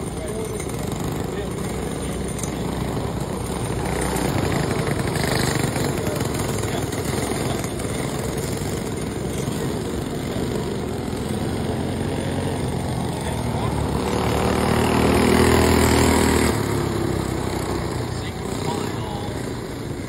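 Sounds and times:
kart engine passing close: 0.0s - 20.0s
kart engines racing: 0.0s - 20.0s.

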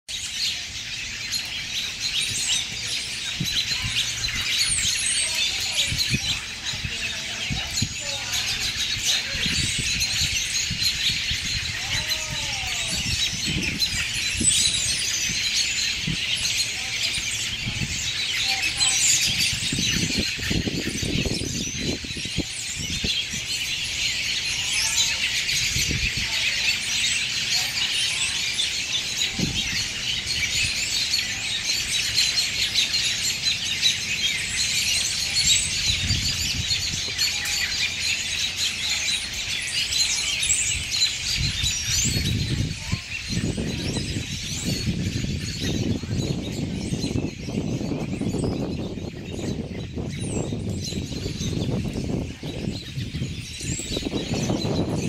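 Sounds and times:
flock of birds chirping: 0.0s - 55.0s.

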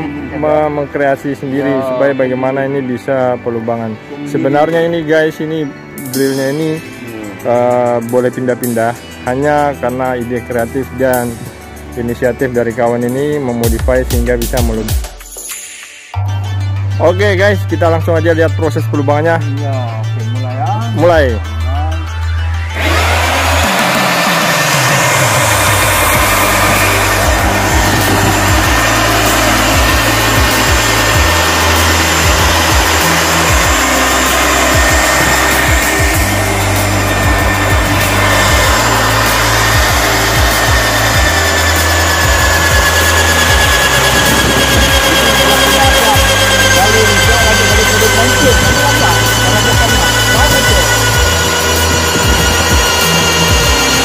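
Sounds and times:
magnetic drill boring into rubber: 22.7s - 54.0s.

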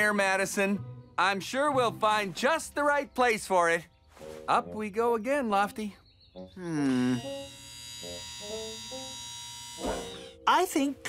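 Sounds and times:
winch motor whining: 7.2s - 10.4s.

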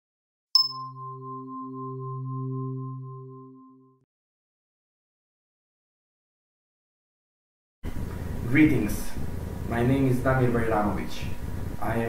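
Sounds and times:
sustained electronic tone: 0.6s - 4.0s.

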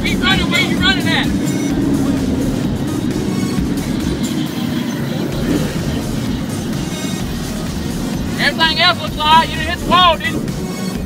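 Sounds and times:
vehicle engines running low: 0.0s - 11.0s.

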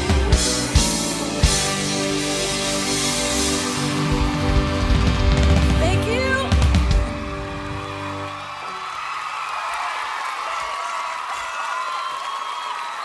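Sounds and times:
live band final chord: 0.0s - 8.5s
audience cheering and screaming: 0.0s - 13.0s.

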